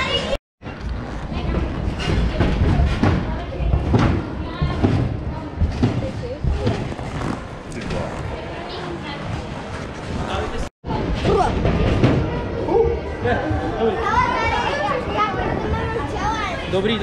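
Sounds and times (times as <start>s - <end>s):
indistinct chatter: 1.2s - 17.0s.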